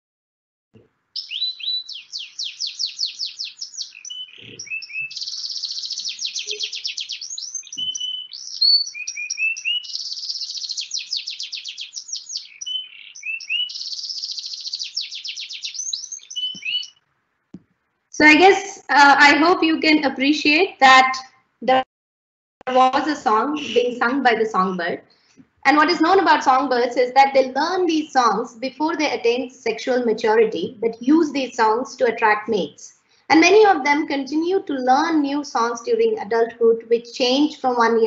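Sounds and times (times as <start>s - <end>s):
canary singing rapid trills: 1.2s - 17.1s, 22.7s - 27.0s.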